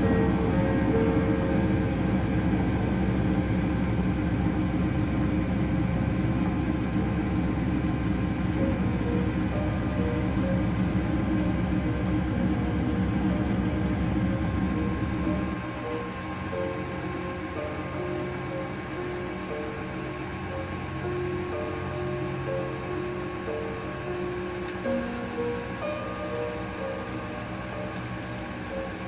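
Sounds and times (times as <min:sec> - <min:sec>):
washing machine motor hum and rumble: 0:00.0 - 0:29.0.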